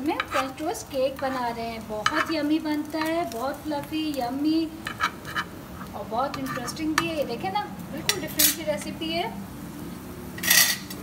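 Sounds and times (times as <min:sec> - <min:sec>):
metal spatula scraping a pan: 0:00.0 - 0:03.3, 0:04.7 - 0:07.2, 0:08.0 - 0:08.7, 0:10.4 - 0:11.0.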